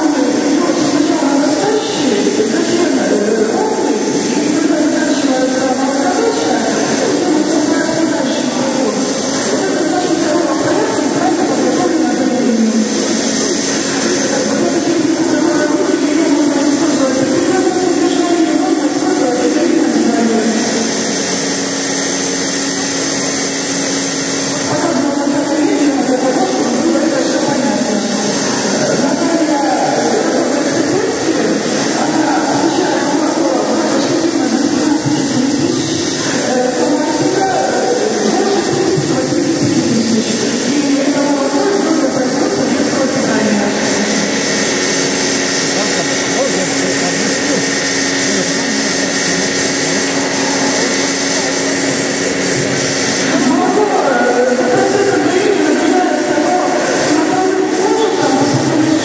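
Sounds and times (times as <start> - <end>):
people talking: 0.0 - 59.0
steady mechanical hum: 0.0 - 59.0.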